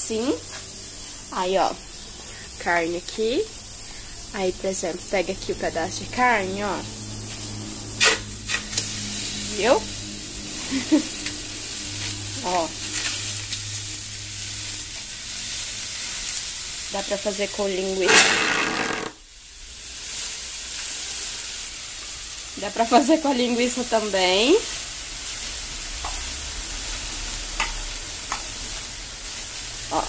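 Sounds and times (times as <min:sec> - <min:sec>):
steady low hum: 0:00.0 - 0:18.0
meat sizzling on a hot tray: 0:00.0 - 0:30.0.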